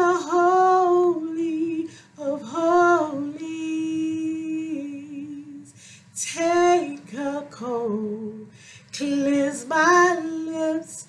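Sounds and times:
woman singing unaccompanied: 0.0s - 11.0s.

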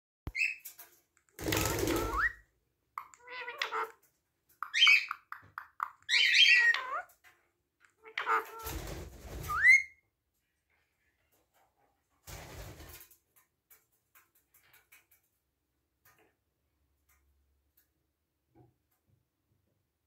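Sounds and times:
parakeet mimicking speech: 3.0s - 4.0s
parakeet whistles rising: 9.5s - 9.9s.

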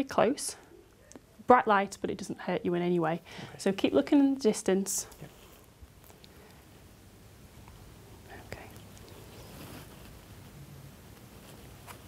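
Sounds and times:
close breathing: 3.2s - 3.6s
clothing rustle: 9.1s - 10.4s.

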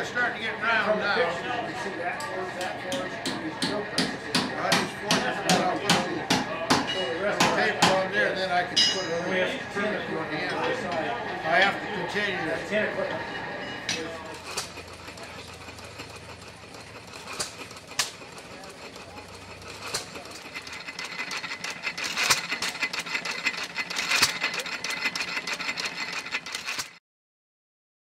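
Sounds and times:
engine mechanical clatter: 0.0s - 27.0s
sharp knocks: 2.9s - 8.0s
engine sharp pops: 16.8s - 18.4s, 19.2s - 26.9s.

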